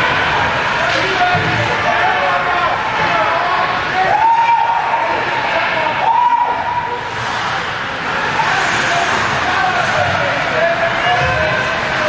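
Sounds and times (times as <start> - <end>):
ice rink crowd noise: 0.0 - 12.0.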